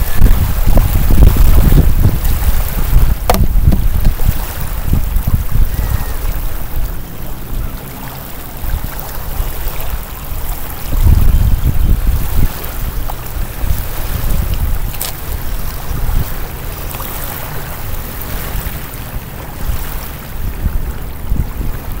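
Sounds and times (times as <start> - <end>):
small waves lapping: 0.0 - 22.0
wind buffeting microphone: 0.0 - 22.0.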